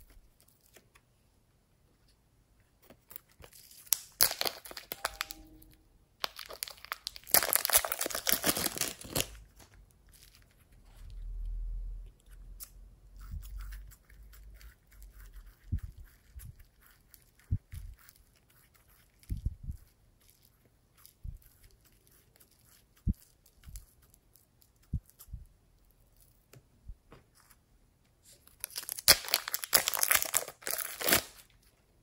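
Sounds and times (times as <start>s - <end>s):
plastic wrapper crinkling and tearing: 0.0s - 1.0s, 2.8s - 11.0s, 28.4s - 31.7s.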